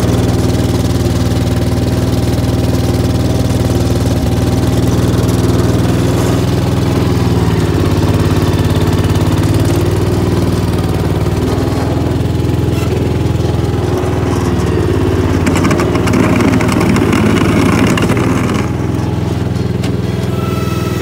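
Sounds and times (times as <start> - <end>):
garden tractor engine idling: 0.0 - 21.0.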